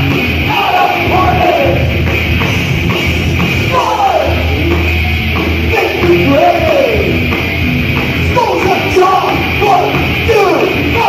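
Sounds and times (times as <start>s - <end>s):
distorted guitars and bass: 0.0s - 11.0s
fast drums: 0.0s - 11.0s.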